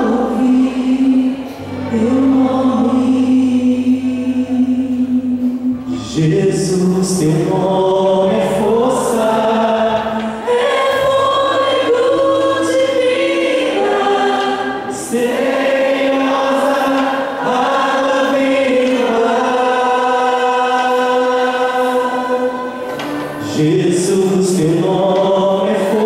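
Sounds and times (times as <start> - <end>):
group singing worship song: 0.0 - 26.0
live band accompaniment: 0.0 - 26.0.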